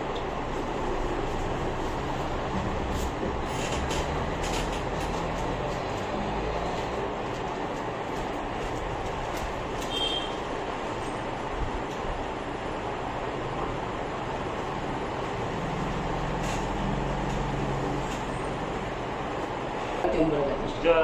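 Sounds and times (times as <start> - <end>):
steady rumbling: 0.0 - 9.8.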